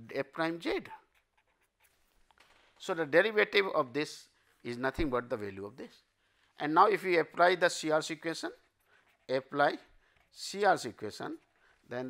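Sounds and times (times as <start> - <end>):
pen scratching on paper: 0.9 - 2.2, 7.5 - 12.0.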